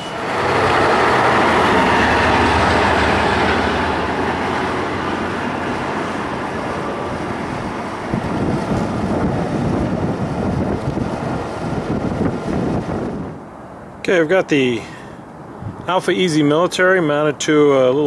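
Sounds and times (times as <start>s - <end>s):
heavy uneven low rumble: 0.0s - 13.4s
train wheel and rail noise: 0.0s - 14.1s.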